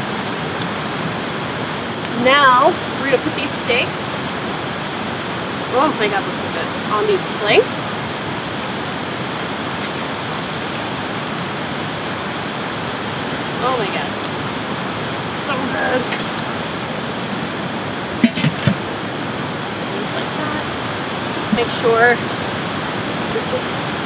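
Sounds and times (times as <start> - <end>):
steady rushing hiss: 0.0 - 24.0
metal grill lid clanking: 18.2 - 18.8.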